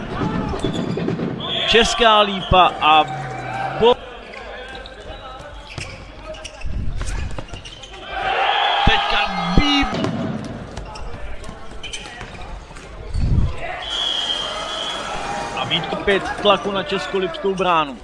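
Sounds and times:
crowd cheering: 0:00.0 - 0:04.9, 0:08.0 - 0:10.9, 0:13.6 - 0:17.5.

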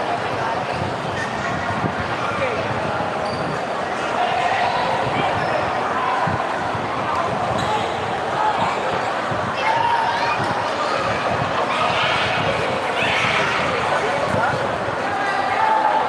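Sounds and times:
indistinct crowd chatter: 0:00.0 - 0:16.0.

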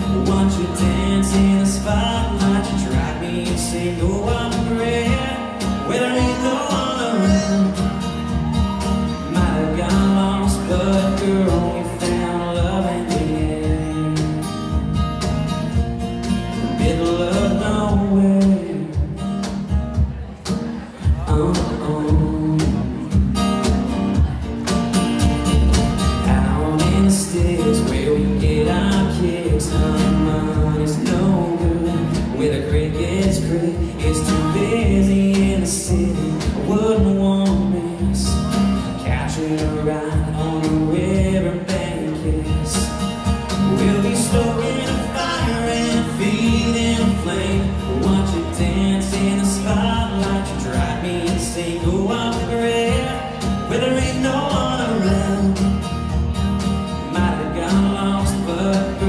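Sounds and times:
man singing: 0:00.0 - 0:15.0, 0:15.7 - 0:19.7, 0:20.8 - 0:24.5, 0:25.6 - 0:56.3, 0:56.9 - 0:59.0
cajon beats: 0:00.0 - 0:59.0
strummed acoustic guitars: 0:00.0 - 0:59.0.

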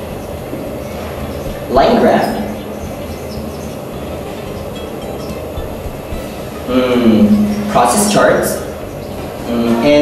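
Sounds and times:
steady rumbling: 0:00.0 - 0:10.0
marker squeaking on whiteboard: 0:00.8 - 0:07.7.

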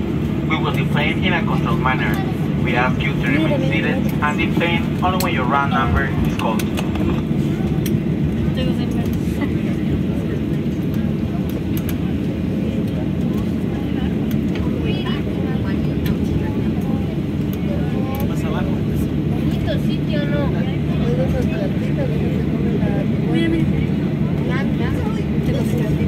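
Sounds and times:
airliner cabin low rumble: 0:00.0 - 0:26.0
faint passenger chatter: 0:00.0 - 0:26.0.

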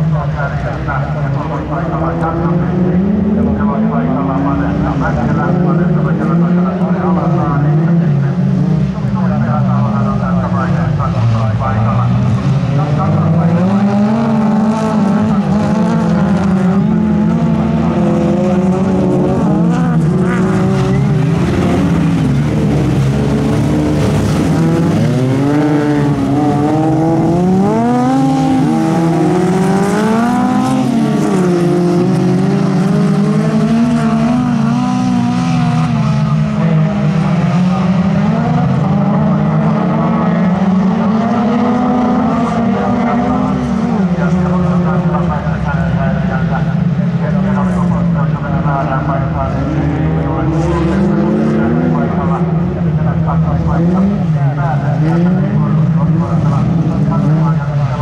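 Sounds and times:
racing car engines revving: 0:00.0 - 0:58.0.

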